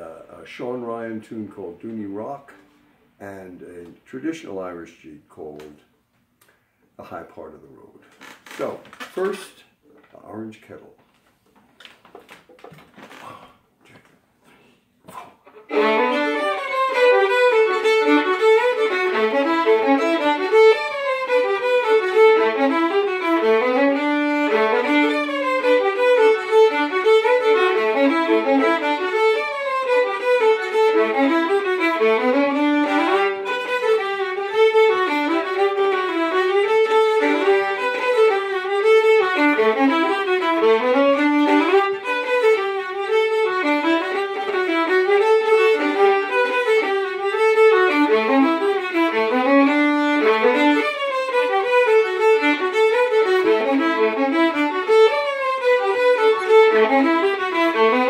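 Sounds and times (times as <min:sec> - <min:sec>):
fiddles playing a jig: 0:15.4 - 0:58.0.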